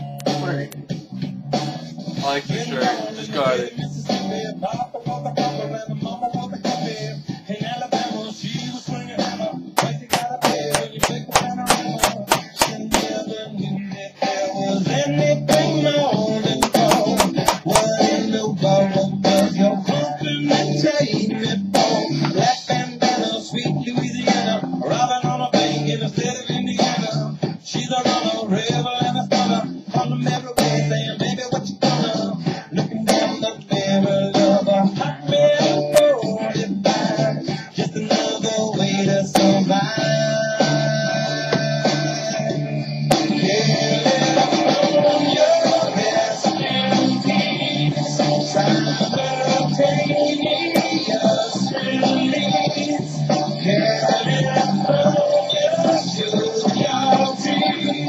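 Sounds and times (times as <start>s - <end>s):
rock song with guitar and singing: 0.0s - 58.0s
quick sharp taps: 9.8s - 13.1s, 16.6s - 17.9s.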